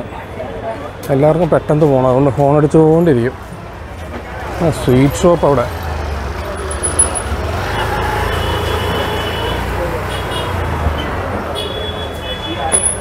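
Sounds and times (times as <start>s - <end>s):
chatter of passers-by: 0.0s - 13.0s
traffic noise: 0.0s - 13.0s
motor scooters passing: 4.0s - 11.6s.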